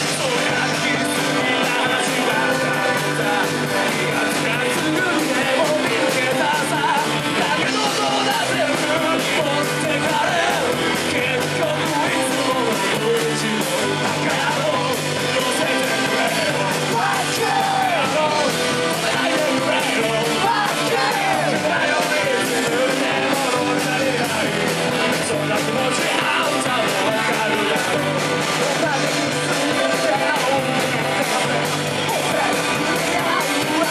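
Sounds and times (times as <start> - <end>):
drums: 0.0 - 33.9
electric guitar: 0.0 - 33.9
punk band playing: 0.0 - 33.9.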